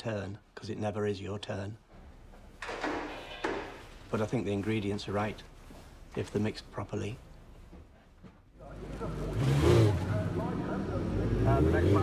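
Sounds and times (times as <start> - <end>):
racing motorcycle engine: 8.9 - 12.0.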